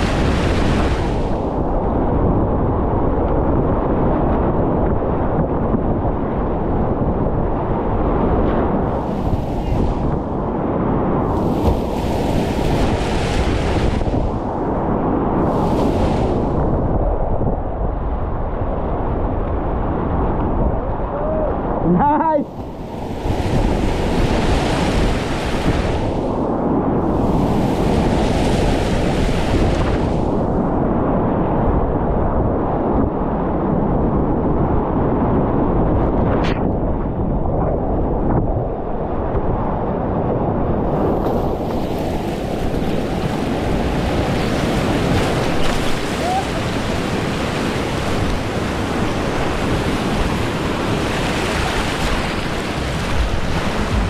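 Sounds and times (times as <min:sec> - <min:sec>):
wind buffeting microphone: 0:00.0 - 0:54.0
whitewater rapids rushing: 0:44.6 - 0:54.0.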